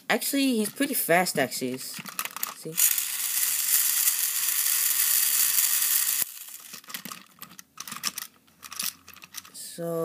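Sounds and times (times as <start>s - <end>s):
toy train motor whirring: 2.3s - 7.3s
faint clicks and rattles: 5.6s - 9.6s.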